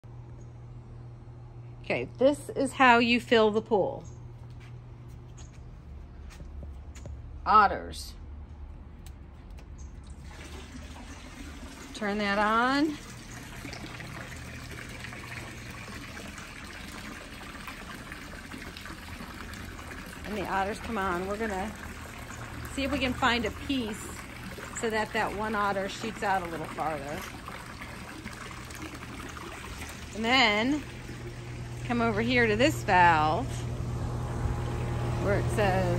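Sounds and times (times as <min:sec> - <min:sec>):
low steady hum: 0:00.0 - 0:35.9
water running through pipes: 0:02.3 - 0:35.9.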